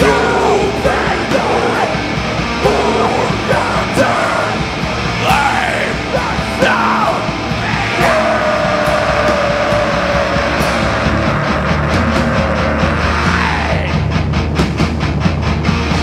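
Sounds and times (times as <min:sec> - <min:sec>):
heavy metal band playing live: 0:00.0 - 0:16.0
vocalist yelling: 0:05.2 - 0:14.0.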